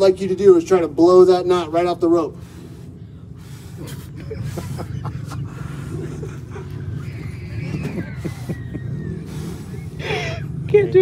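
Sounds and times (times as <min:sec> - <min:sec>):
boy blowing hard: 0:06.9 - 0:10.6.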